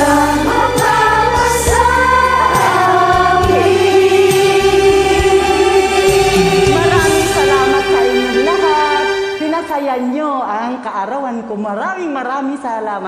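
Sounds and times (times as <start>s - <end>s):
women singing together: 0.0s - 7.9s
karaoke backing track: 0.0s - 10.6s.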